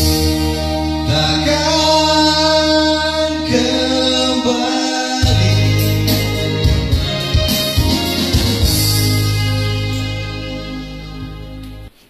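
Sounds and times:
electronic keyboard accompaniment: 0.0s - 12.0s
man singing into microphone: 1.0s - 7.1s.

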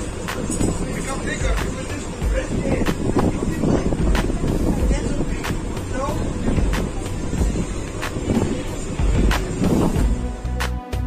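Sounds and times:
people talking: 0.0s - 10.1s
boat engine rumble: 0.0s - 11.0s.

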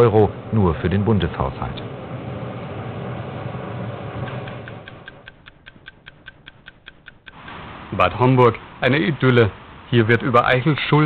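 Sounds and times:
steady noisy background: 0.0s - 11.0s
fast even ticking: 4.4s - 7.4s.

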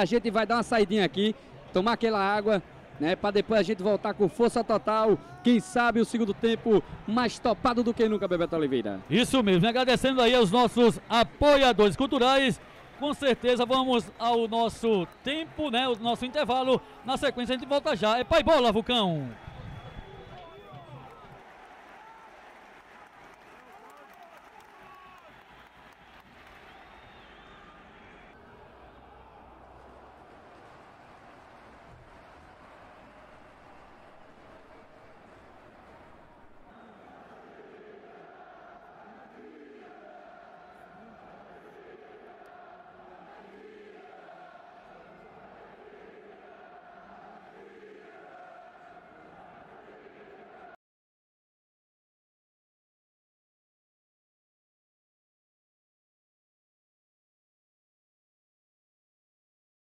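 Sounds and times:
distant crowd voices and chanting: 0.0s - 23.2s, 25.9s - 50.8s.

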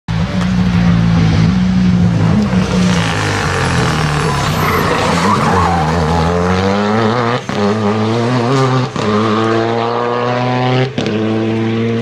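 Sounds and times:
rally car engine revving hard: 0.1s - 12.0s
tyre squeal: 2.5s - 6.5s.

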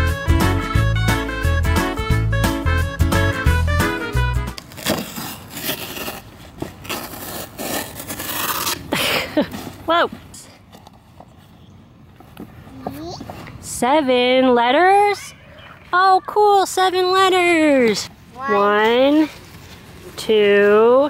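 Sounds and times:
background music: 0.0s - 4.6s
packing tape pulled apart: 4.5s - 9.0s
cardboard box being torn open: 4.6s - 8.9s.

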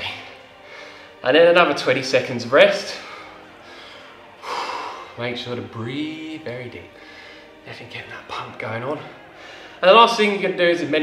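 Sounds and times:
man breathing hard: 0.4s - 1.2s, 3.0s - 5.2s, 6.9s - 7.6s, 9.1s - 9.8s.

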